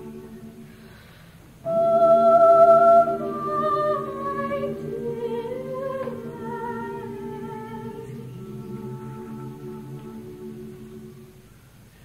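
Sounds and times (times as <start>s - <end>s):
choir humming sustained chords: 0.0s - 12.0s.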